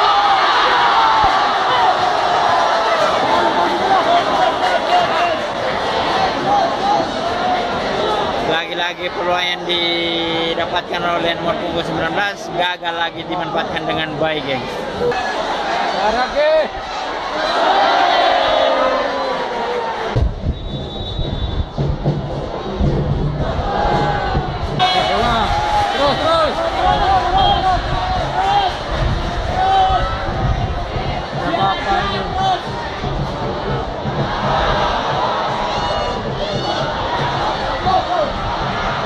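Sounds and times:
crowd chanting and shouting: 0.0 - 39.0.

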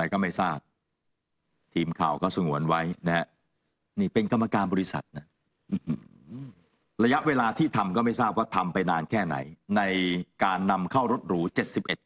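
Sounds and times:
man speaking: 0.0 - 0.7, 1.7 - 12.0
man humming: 5.7 - 6.6.

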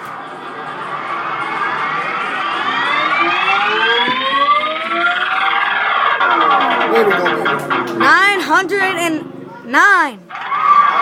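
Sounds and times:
electronic tones climbing in pitch: 0.1 - 9.4.

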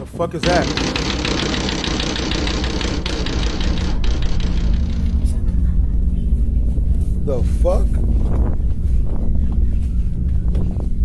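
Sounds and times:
banging and rattling on window: 0.4 - 5.6
low rumble: 0.4 - 11.0.

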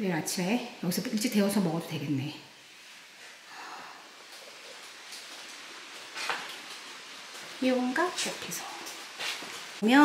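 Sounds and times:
light rain falling: 0.0 - 10.0
faint rain taps: 3.2 - 10.0.

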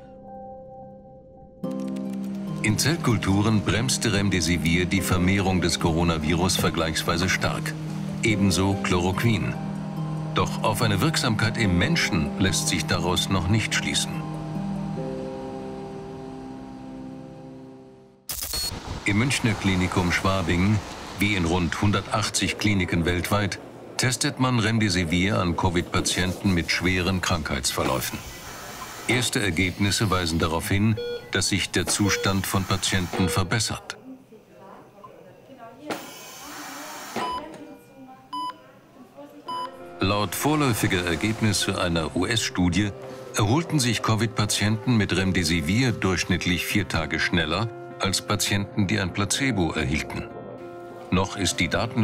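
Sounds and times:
held synth chord: 3.1 - 18.2
patient monitor beeping: 22.4 - 34.0, 36.0 - 38.8, 39.5 - 42.5.

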